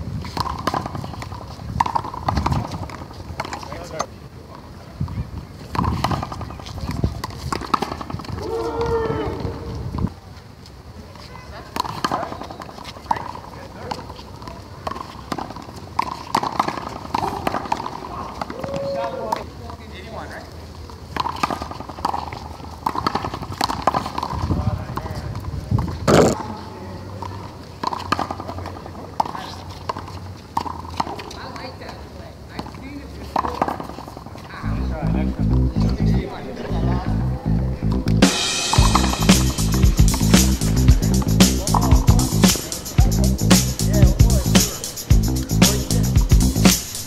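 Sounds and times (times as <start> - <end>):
players' voices: 31.0 - 47.0.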